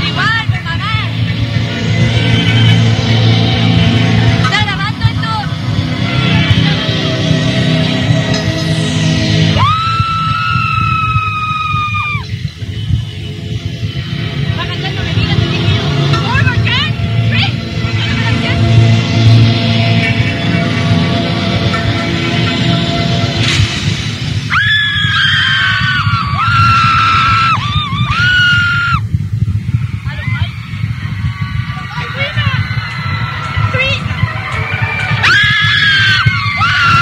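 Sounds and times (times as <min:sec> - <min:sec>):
crowd noise: 0:00.0 - 0:37.0
fan screaming high-pitched: 0:00.0 - 0:37.0.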